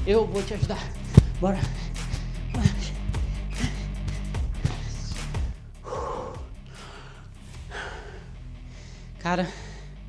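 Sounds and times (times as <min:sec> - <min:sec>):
man breathing heavily: 0:00.6 - 0:10.0.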